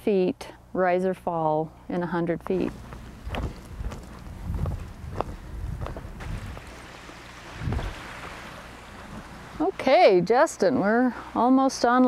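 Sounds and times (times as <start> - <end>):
microphone handling noise: 2.8 - 6.8, 7.5 - 8.1
wind rumble: 3.1 - 6.8, 7.4 - 9.7.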